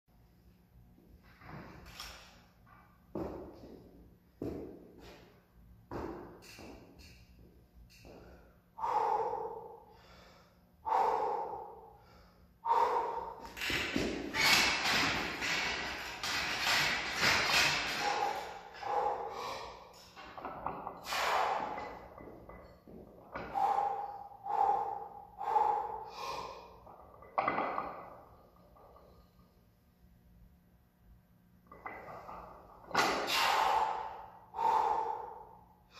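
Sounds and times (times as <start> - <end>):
heavy forceful breathing: 8.0 - 14.0, 14.7 - 27.0, 32.1 - 35.9.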